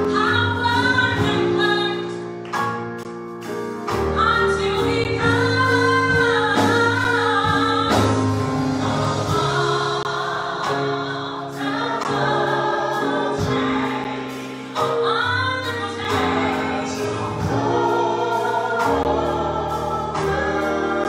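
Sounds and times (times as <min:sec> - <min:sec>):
group singing gospel song: 0:04.4 - 0:21.0.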